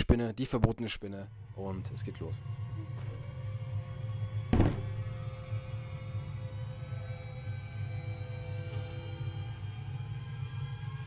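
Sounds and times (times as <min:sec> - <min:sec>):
dark background music: 0:00.4 - 0:11.0
glass terrarium thunk on table: 0:04.6 - 0:05.0.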